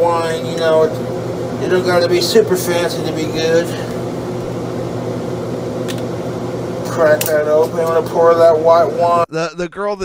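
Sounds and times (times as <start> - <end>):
fan humming: 0.0 - 10.0.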